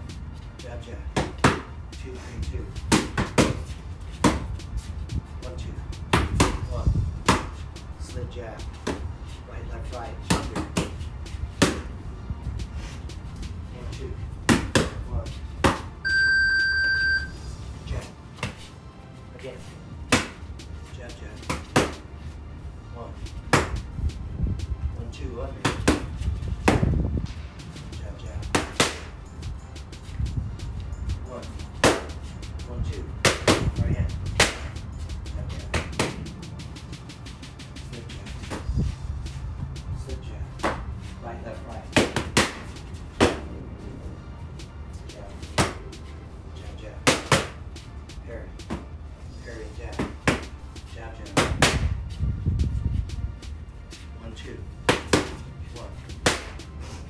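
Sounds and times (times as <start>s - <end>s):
punches smacking focus pads: 1.1s - 1.7s, 2.8s - 4.6s, 6.1s - 7.6s, 14.4s - 15.0s, 15.6s - 15.9s, 20.1s - 20.4s, 47.0s - 47.6s, 56.2s - 56.6s
electronic timer beep: 16.0s - 17.4s.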